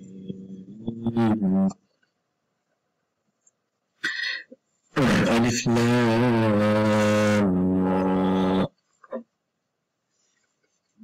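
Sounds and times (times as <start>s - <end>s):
person chanting a long note: 0.0s - 1.8s, 5.0s - 8.7s.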